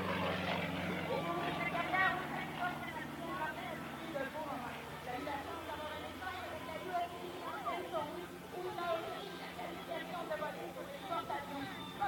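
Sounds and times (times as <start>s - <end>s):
propeller aircraft engine drone: 0.0s - 12.0s
people talking: 1.1s - 12.0s.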